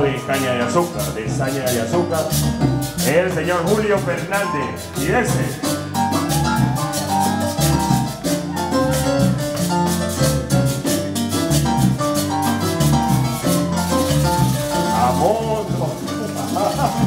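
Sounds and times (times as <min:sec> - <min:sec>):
hand percussion: 0:00.0 - 0:17.0
latin band playing: 0:00.0 - 0:17.0.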